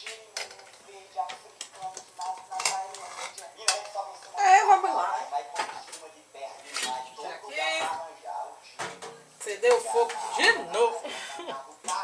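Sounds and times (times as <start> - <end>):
murmured voice: 9.7 - 12.0.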